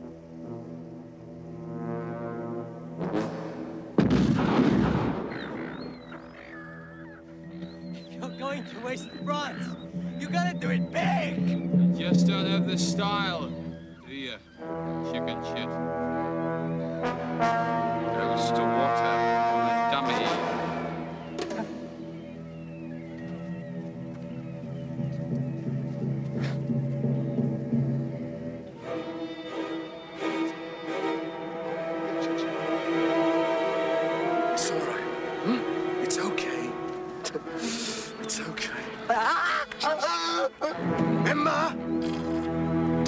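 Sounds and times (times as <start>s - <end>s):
low brass chord: 0.0s - 5.2s, 14.6s - 22.1s, 27.7s - 38.2s, 40.7s - 43.0s
shotgun blast: 4.0s - 5.4s.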